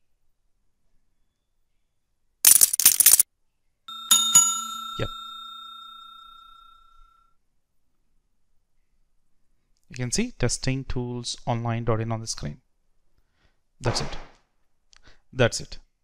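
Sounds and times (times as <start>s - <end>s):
bright bell ding: 3.9s - 6.8s.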